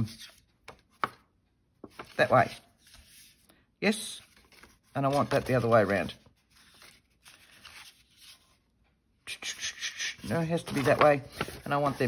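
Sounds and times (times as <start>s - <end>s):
paper rustling: 1.8s - 8.9s, 10.1s - 12.0s.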